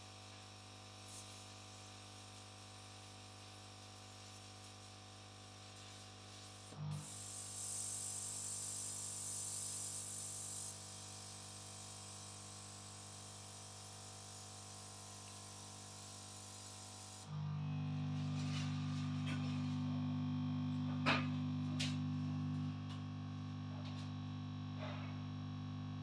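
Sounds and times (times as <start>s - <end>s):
louder higher hum: 17.2s - 24.1s
low machine hum: 17.3s - 25.2s.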